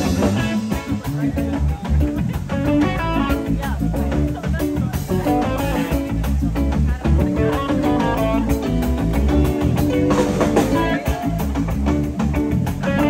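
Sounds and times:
bass guitar: 0:00.0 - 0:13.0
drums: 0:00.0 - 0:13.0
electric guitar: 0:00.0 - 0:13.0.

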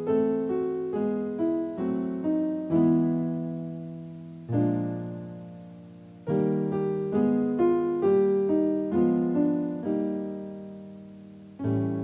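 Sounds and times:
piano notes and chords: 0:00.0 - 0:12.0.

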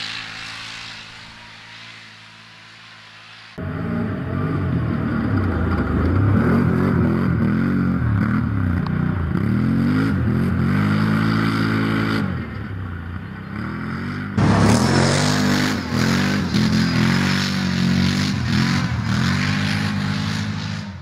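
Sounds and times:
quad engine revving: 0:00.0 - 0:21.0.

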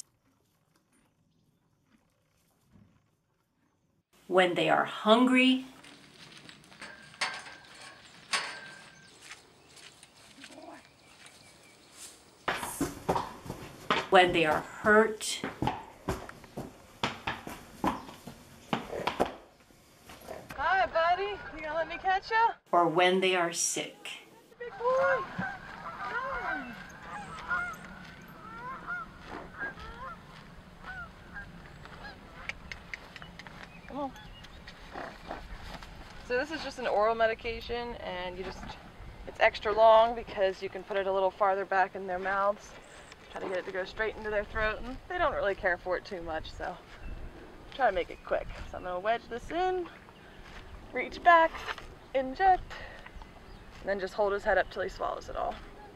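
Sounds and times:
geese honking: 0:24.6 - 0:32.6.

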